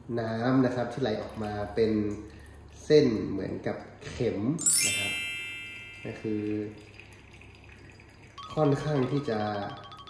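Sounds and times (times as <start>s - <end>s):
water trickling into glass: 0.8s - 3.9s, 4.6s - 10.0s
chimes ringing: 4.6s - 6.8s.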